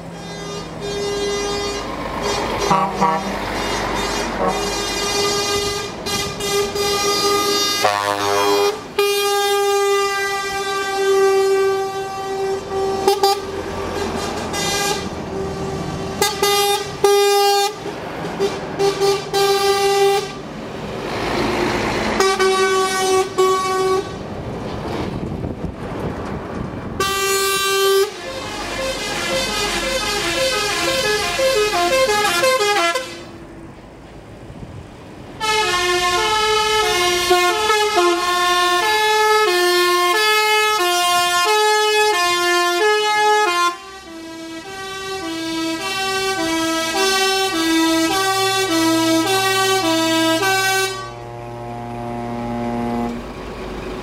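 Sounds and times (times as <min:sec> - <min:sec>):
diesel engines passing: 0:00.0 - 0:54.0
lorry air horns: 0:00.2 - 0:17.8, 0:22.2 - 0:24.2, 0:27.0 - 0:33.4, 0:35.4 - 0:53.4.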